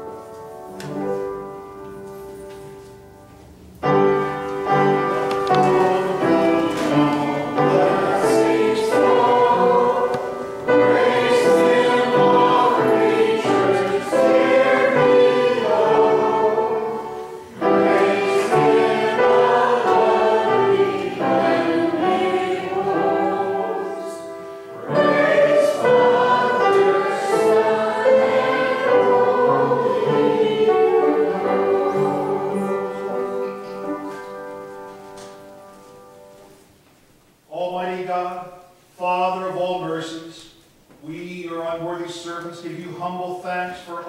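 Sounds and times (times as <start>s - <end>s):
keyboard accompaniment: 0.0s - 36.9s
group singing a hymn: 4.6s - 34.2s.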